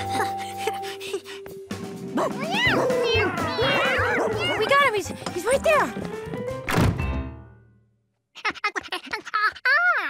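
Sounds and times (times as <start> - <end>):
cartoon music: 2.2 - 5.9
door slamming shut: 6.7 - 7.2.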